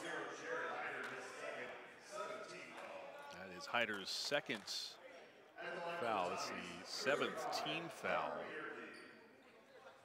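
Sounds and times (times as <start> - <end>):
echoing voices talking: 0.0 - 9.6.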